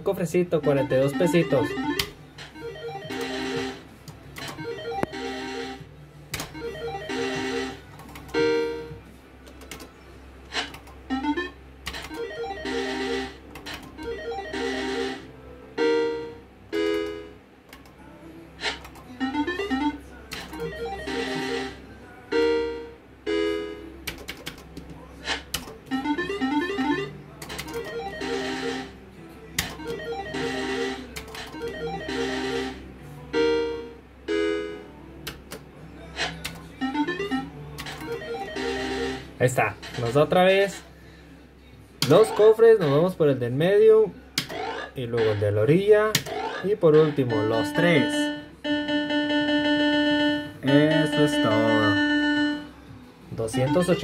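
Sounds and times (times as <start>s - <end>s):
slot machine electronic tunes: 0.0s - 17.5s, 18.6s - 29.0s, 29.6s - 35.4s, 36.2s - 40.8s, 42.0s - 43.7s, 44.4s - 54.0s.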